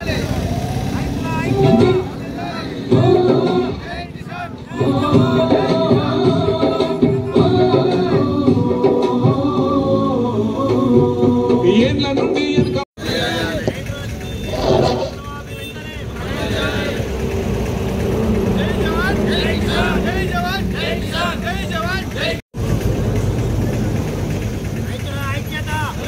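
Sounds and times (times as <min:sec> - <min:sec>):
voices speaking: 0:00.0 - 0:05.1, 0:13.0 - 0:22.4
road traffic rumble: 0:00.0 - 0:11.7, 0:13.0 - 0:26.0.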